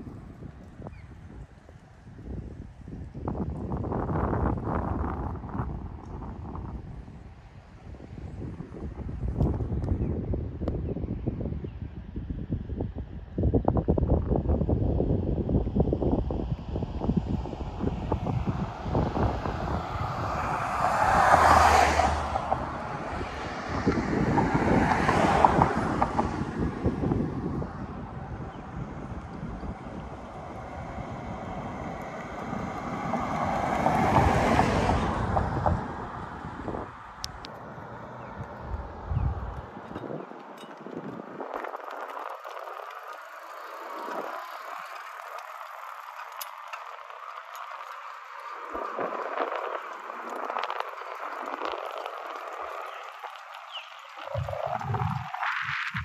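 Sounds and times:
bicycle rolling on pavement: 0.0s - 56.0s
wind buffeting microphone: 0.0s - 56.0s
vehicles passing: 15.6s - 56.0s
light clicks and rattles: 39.5s - 54.3s.

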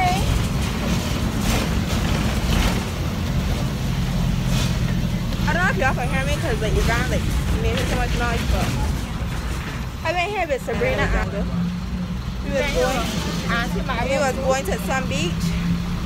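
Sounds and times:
bus engine rumble: 0.0s - 16.0s.

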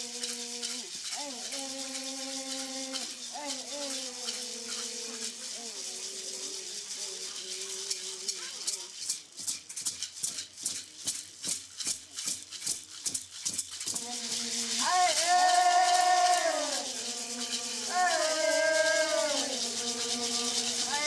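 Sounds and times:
person chanting: 0.0s - 9.0s, 13.9s - 21.0s
hand rattle shaken: 0.0s - 21.0s.

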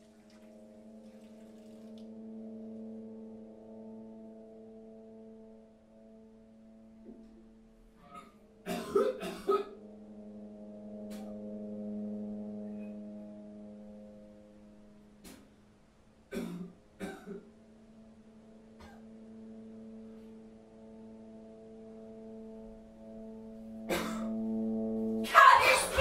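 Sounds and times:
droning bell-like tones: 0.0s - 8.6s, 9.7s - 15.2s, 17.6s - 26.0s
man coughing and gagging: 8.2s - 9.7s, 16.3s - 17.5s, 18.8s - 19.0s, 23.9s - 24.3s.

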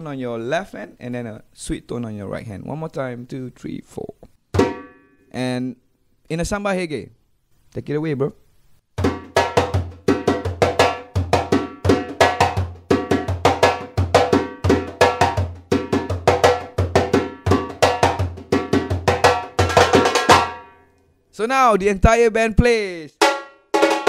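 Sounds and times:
hand drum played fast: 9.0s - 20.6s, 23.2s - 24.0s.

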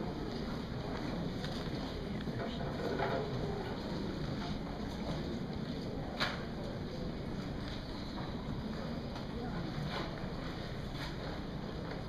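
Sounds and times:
audience murmur and rustling: 0.0s - 12.0s.

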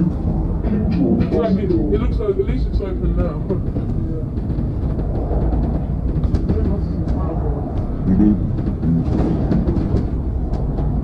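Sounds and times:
bus rumbling: 0.0s - 11.0s.

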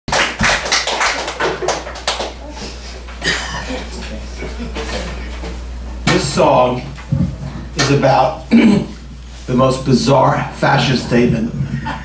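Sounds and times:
hand claps: 0.1s - 2.8s.

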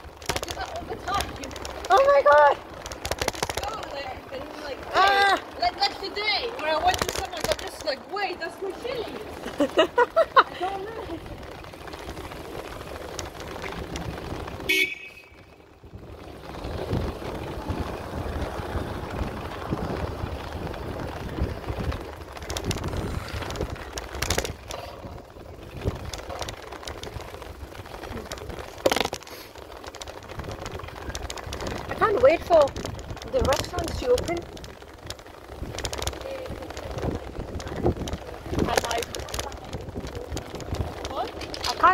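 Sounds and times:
bicycle clicks and rattles: 0.0s - 41.9s
wind and road rumble: 0.0s - 41.9s
high-pitched horn toot: 14.7s - 15.4s.

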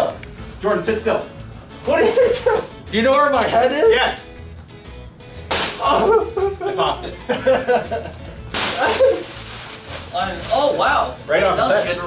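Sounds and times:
foil balloon hissing rustle: 8.5s - 11.0s.

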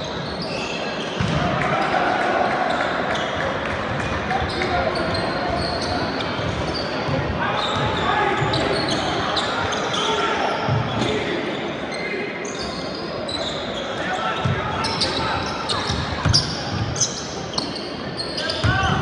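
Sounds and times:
sneaker squeaks: 0.0s - 1.4s, 2.7s - 19.0s.

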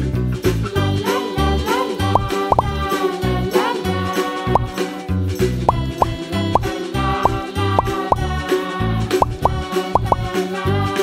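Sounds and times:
upbeat children's music: 0.0s - 11.0s
short rising bloop notes: 2.2s - 2.7s, 4.6s - 4.8s.

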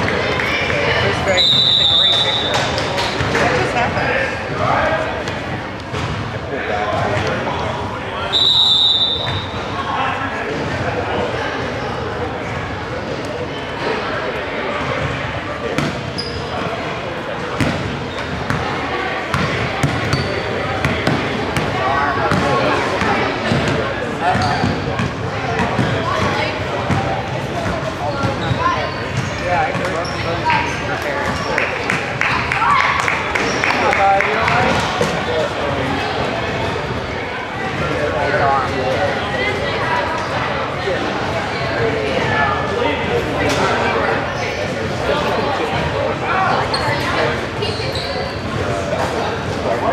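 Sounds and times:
chatter of people in gym: 0.0s - 49.9s
referee's whistle: 1.4s - 2.6s, 8.3s - 9.6s
basketball bouncing: 19.3s - 21.7s.

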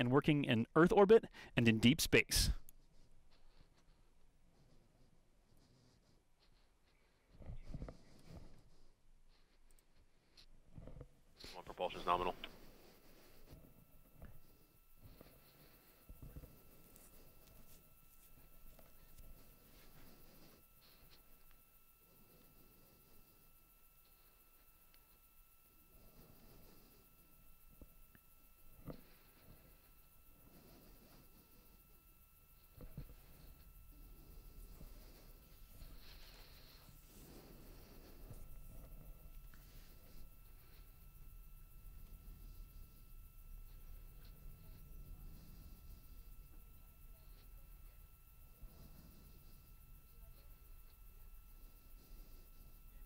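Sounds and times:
faint electronic whine: 0.0s - 53.0s
thin steady tone: 11.4s - 53.0s.

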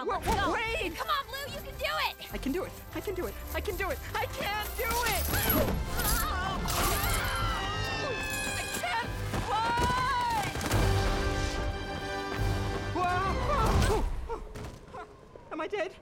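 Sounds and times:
film music: 0.0s - 15.7s.

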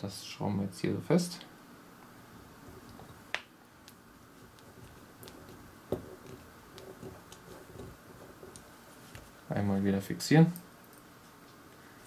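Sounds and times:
quiet handling: 2.0s - 11.8s.

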